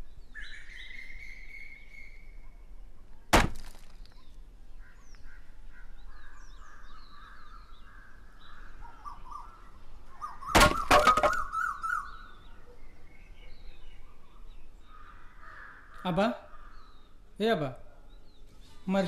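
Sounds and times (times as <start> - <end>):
birds chirping and calling: 0.0 - 3.3, 4.0 - 19.0
loud sharp knocks: 3.3 - 3.9, 10.6 - 11.4.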